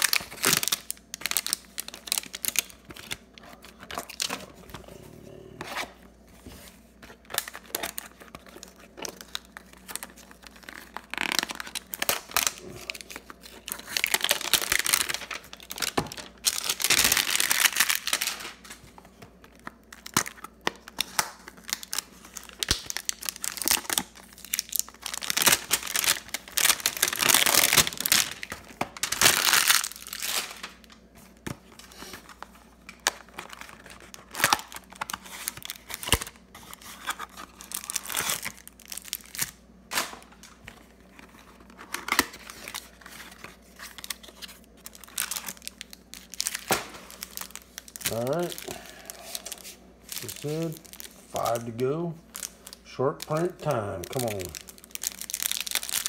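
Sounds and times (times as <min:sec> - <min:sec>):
cellophane crinkling: 0:00.0 - 0:56.0.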